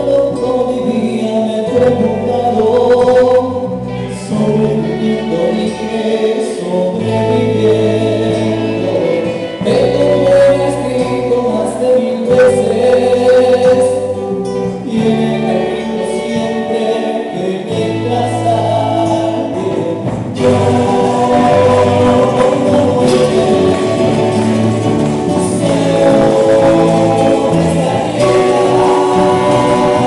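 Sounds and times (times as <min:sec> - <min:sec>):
electric bass: 0:00.0 - 0:30.0
strummed acoustic guitar: 0:00.0 - 0:30.0.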